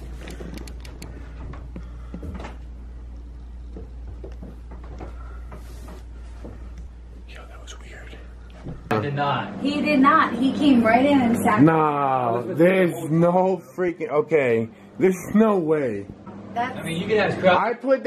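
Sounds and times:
steady low hum: 0.0 - 18.0
faint clicks and knocks: 0.1 - 6.9.

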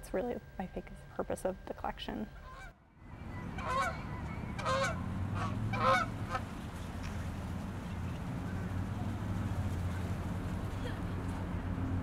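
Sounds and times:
low steady rumble: 0.0 - 12.0
geese honking: 2.4 - 7.2.

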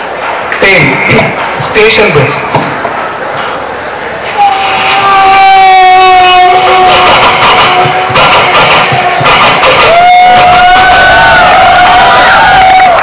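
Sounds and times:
beatboxed drum-like clicks: 6.9 - 10.0.

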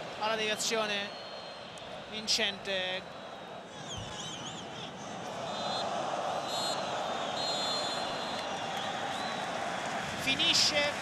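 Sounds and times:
stadium crowd cheering: 0.0 - 11.0
referee whistle blasts: 0.6 - 1.8, 5.5 - 9.4.

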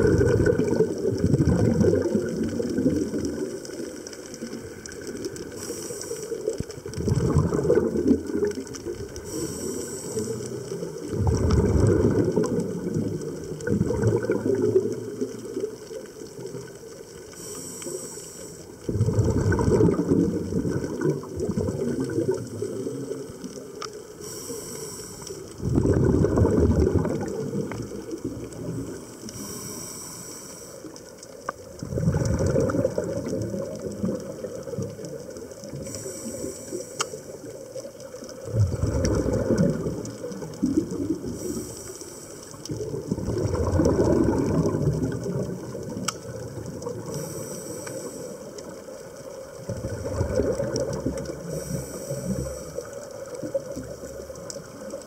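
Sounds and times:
exhaust bubbles rumbling: 0.0 - 6.0, 6.7 - 9.4, 10.2 - 16.8, 18.8 - 23.4, 25.5 - 29.4, 31.6 - 36.5, 37.4 - 41.8, 42.6 - 47.4, 49.5 - 55.0
regulator inhale hiss: 5.2 - 6.7, 9.1 - 11.0, 17.2 - 18.9, 22.6 - 25.6, 27.6 - 31.3, 35.7 - 37.6, 41.2 - 42.7, 47.0 - 49.0, 51.3 - 53.2.

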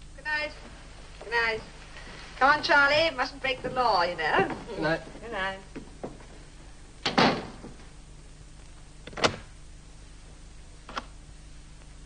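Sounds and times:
door shutting with a thud: 7.0 - 7.8.

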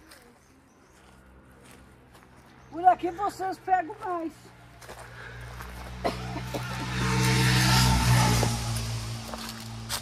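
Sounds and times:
car passing: 1.2 - 10.0.

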